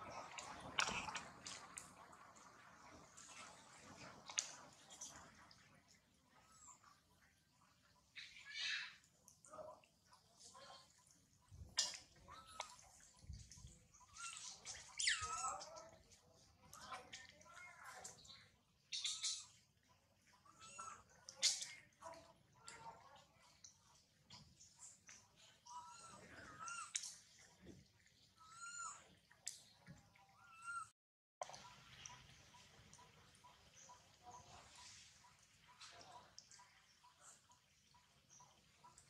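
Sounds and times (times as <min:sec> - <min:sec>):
monkey high-pitched calls: 0:08.2 - 0:09.0, 0:11.7 - 0:15.8, 0:18.9 - 0:19.6, 0:20.4 - 0:21.8, 0:25.6 - 0:27.1, 0:28.4 - 0:29.1, 0:30.3 - 0:30.9.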